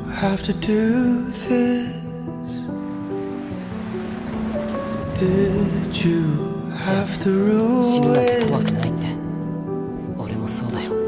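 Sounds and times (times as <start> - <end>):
person singing a ballad: 0.0 - 2.7, 5.0 - 9.3
soft instrumental music: 0.0 - 11.0.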